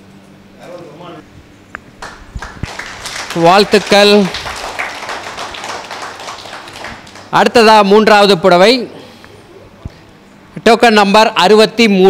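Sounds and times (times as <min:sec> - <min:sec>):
people clapping: 0:02.0 - 0:07.8.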